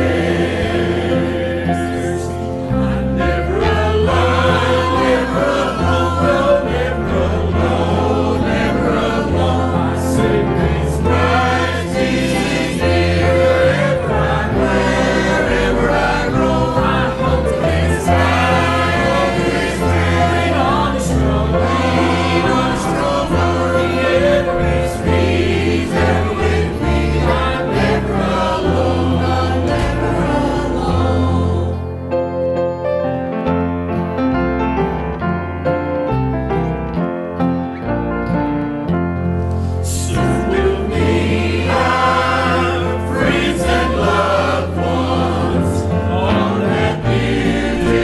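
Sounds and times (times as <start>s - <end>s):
choir singing a hymn: 0.0s - 32.8s, 39.6s - 48.0s
instrumental accompaniment: 0.0s - 48.0s.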